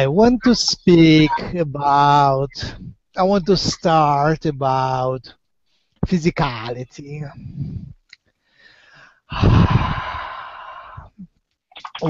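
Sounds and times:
man sighing into microphone: 9.3 - 11.2.

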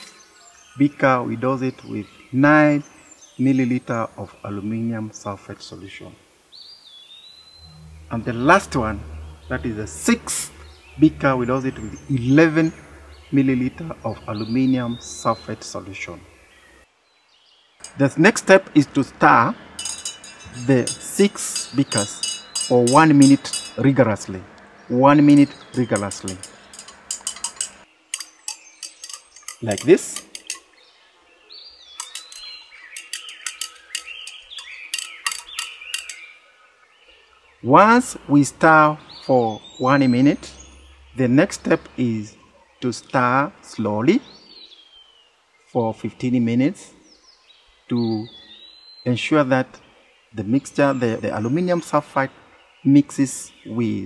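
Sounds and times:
birds chirping: 0.0 - 54.0
low hum: 7.5 - 16.8, 17.8 - 27.8
stirring rod clicking on glass: 19.8 - 23.8, 25.3 - 30.7, 32.0 - 36.3.

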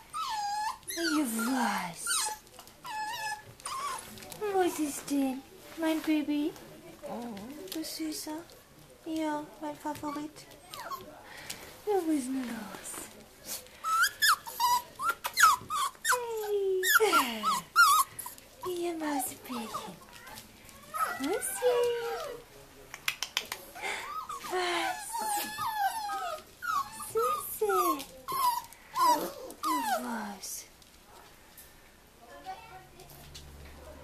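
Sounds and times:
puppies whining: 0.0 - 4.2, 9.9 - 11.2, 13.8 - 22.4, 23.8 - 30.5.

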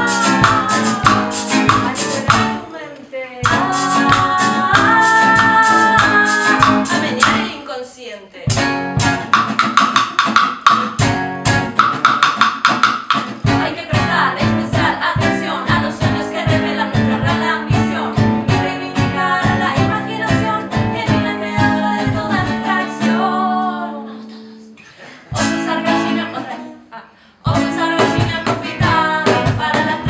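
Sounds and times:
acoustic guitar strumming: 0.0 - 2.7, 3.4 - 7.6, 8.5 - 26.8
stick beating percussion: 0.0 - 2.7, 3.4 - 7.6, 8.5 - 15.8
women singing: 0.0 - 8.7, 13.4 - 24.7, 25.3 - 30.0.

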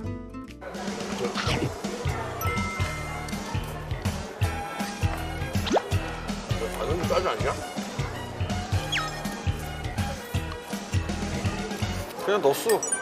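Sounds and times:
upbeat background music: 0.0 - 13.0.

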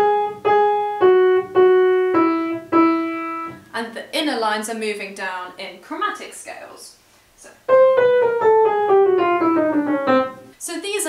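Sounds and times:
upright piano chords: 0.0 - 3.7, 7.6 - 10.6.

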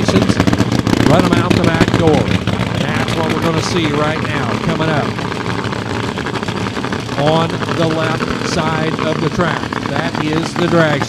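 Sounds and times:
race car engine idling: 0.0 - 11.0.

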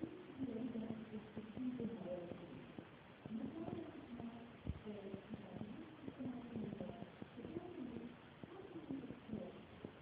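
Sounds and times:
muffled person speaking: 0.0 - 10.0.

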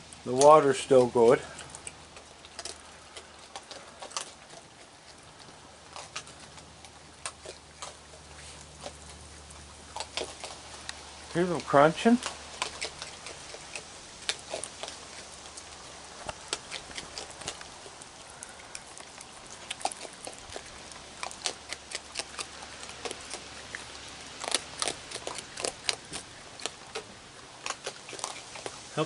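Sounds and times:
raccoons crunching dry food: 0.0 - 29.0.

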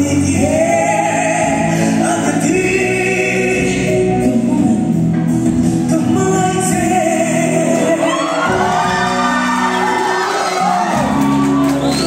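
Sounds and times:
man and woman singing: 0.0 - 5.1, 5.8 - 9.4
live band music: 0.0 - 12.0.

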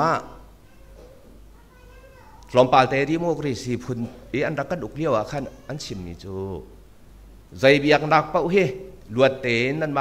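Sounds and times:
man preaching over microphone: 0.0 - 0.4, 2.5 - 6.7, 7.6 - 10.0.

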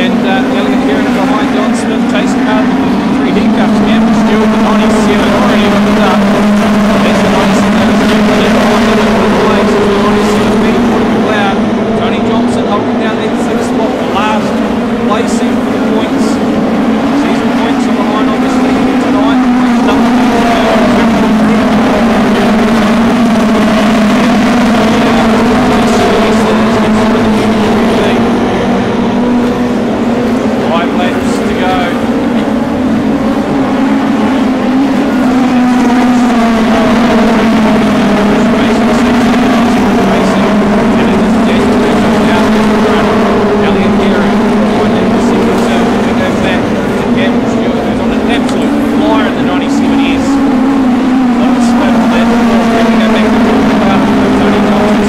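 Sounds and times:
racing car engines at high revs: 0.0 - 55.0.

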